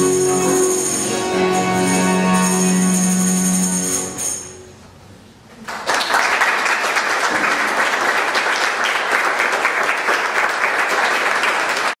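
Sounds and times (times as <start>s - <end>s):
music: 0.0s - 4.8s
audience applauding: 5.6s - 12.0s.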